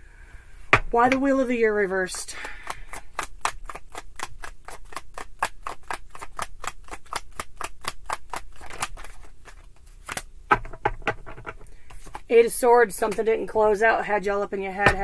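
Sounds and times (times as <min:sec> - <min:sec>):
cards being shuffled: 0:02.6 - 0:10.7.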